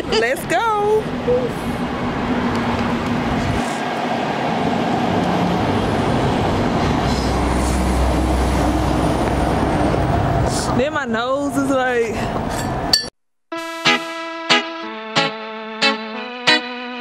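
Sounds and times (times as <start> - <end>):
heavy vehicle rumbling: 0.0 - 13.0
passing vehicles rushing: 0.0 - 13.0.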